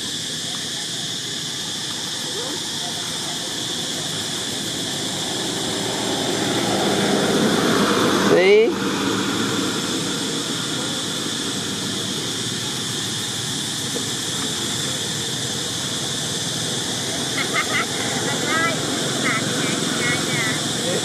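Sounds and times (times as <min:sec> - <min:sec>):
background traffic noise: 0:00.0 - 0:21.0
motorbike passing: 0:02.3 - 0:21.0.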